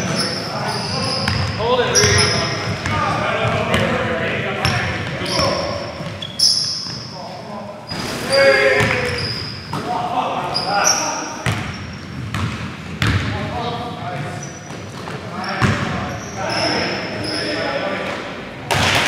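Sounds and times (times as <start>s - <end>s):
sneaker squeaks: 0.0s - 3.0s, 4.6s - 13.2s, 14.2s - 17.9s
players calling out: 0.0s - 12.0s, 15.3s - 18.4s
basketball bouncing on hardwood: 12.3s - 13.2s.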